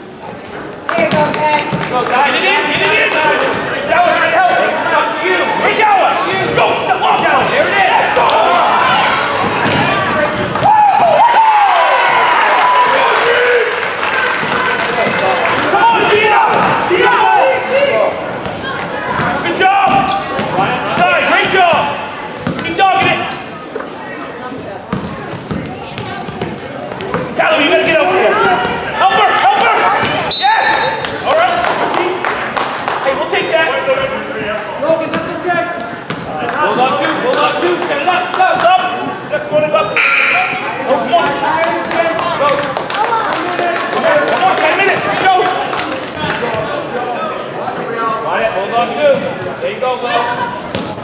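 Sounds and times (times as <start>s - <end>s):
basketball bouncing on wooden floor: 9.4s - 10.7s, 18.4s - 23.2s, 24.9s - 27.3s.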